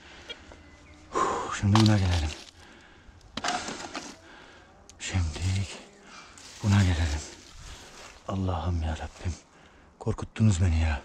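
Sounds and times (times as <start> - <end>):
scraping and rustling in dry leaves: 5.3 - 8.3.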